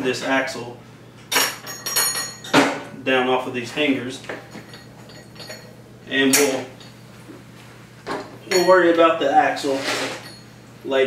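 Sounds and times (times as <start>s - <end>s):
sharp metallic knocks ringing: 8.4s - 9.1s.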